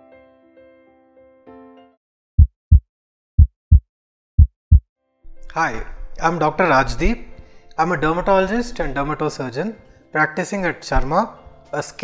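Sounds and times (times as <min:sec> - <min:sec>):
heartbeat double thump: 0:02.4 - 0:02.8, 0:03.4 - 0:03.8, 0:04.4 - 0:04.8.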